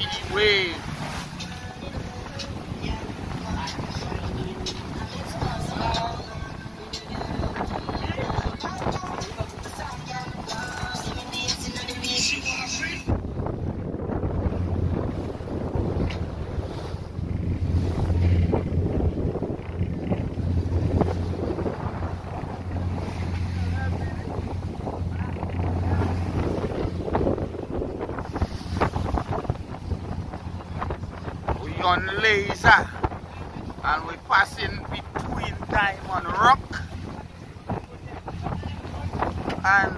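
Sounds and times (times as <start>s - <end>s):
waves washing past boat hull: 0.0s - 39.9s
wind on microphone: 0.0s - 39.9s
steady low drone: 12.6s - 32.1s.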